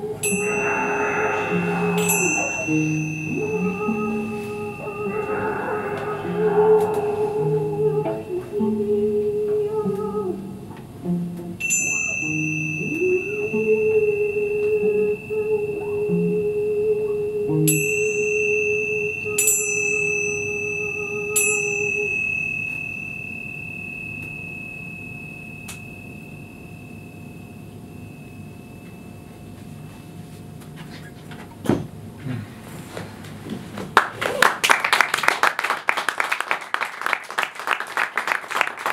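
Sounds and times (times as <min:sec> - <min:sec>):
small high-pitched bell ringing: 0:00.0 - 0:05.1, 0:11.6 - 0:16.2, 0:17.7 - 0:30.1
steady held mid-pitched tone: 0:00.0 - 0:30.4.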